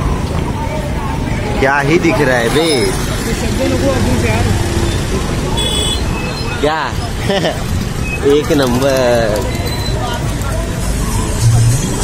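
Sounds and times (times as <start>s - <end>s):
traffic drone: 0.0s - 12.0s
voices of passers-by: 0.0s - 12.0s.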